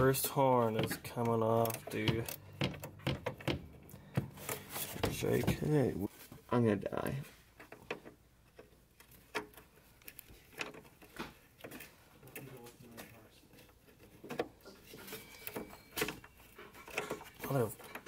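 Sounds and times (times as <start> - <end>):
ratchet clicking and knocking: 0.6 - 4.4.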